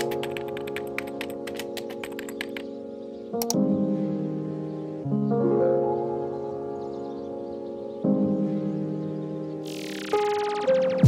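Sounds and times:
keyboard typing clicks: 0:00.0 - 0:02.7, 0:03.4 - 0:03.6
background music chords: 0:00.0 - 0:11.0.

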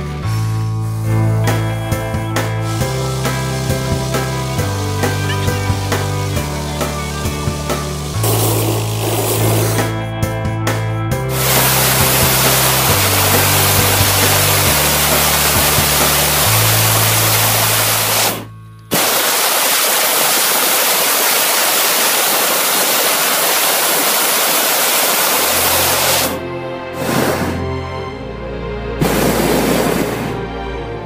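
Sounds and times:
music with bass line: 0:00.0 - 0:19.0
propane burner roaring: 0:00.2 - 0:10.0, 0:11.3 - 0:26.4, 0:27.0 - 0:27.6, 0:29.0 - 0:30.4.

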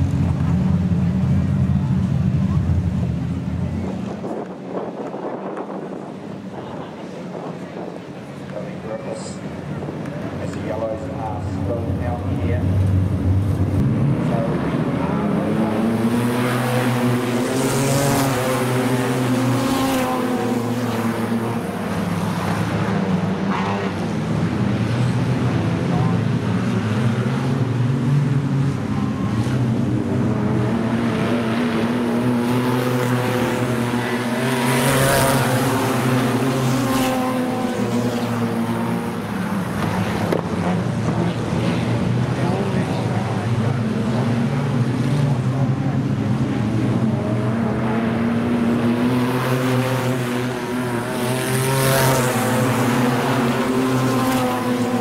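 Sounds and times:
race car engines passing by: 0:00.0 - 0:55.0.

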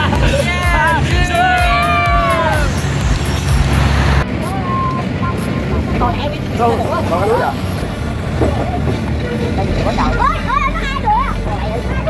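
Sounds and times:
voices: 0:00.0 - 0:12.0
train passing with low rumble: 0:02.6 - 0:12.0.

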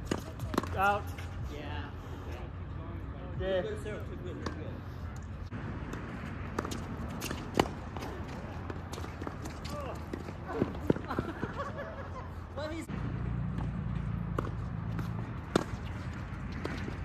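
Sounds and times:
tennis ball hits and bounces: 0:00.0 - 0:01.4, 0:04.3 - 0:04.6, 0:05.2 - 0:11.5, 0:13.4 - 0:17.0.

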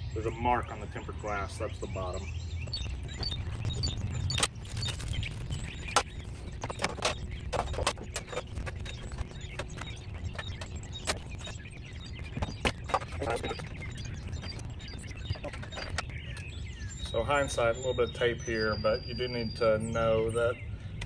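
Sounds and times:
low rumble: 0:00.0 - 0:21.0.

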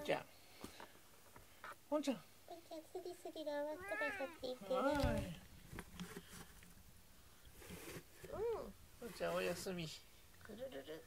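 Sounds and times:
cat meowing: 0:03.8 - 0:04.4.

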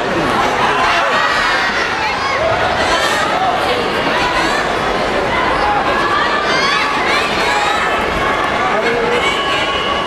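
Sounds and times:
crowd shouting and cheering: 0:00.0 - 0:10.0.

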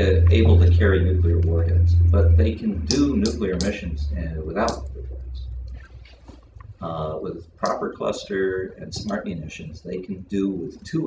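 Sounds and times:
low rumble: 0:00.0 - 0:05.9.

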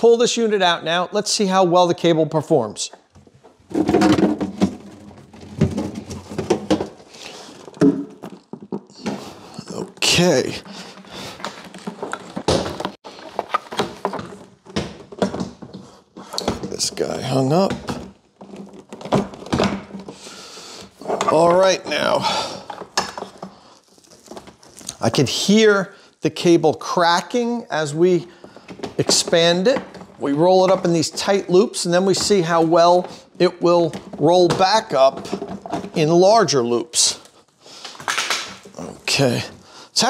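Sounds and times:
frozen cable cracking and clicking: 0:22.9 - 0:25.2, 0:37.8 - 0:39.4.

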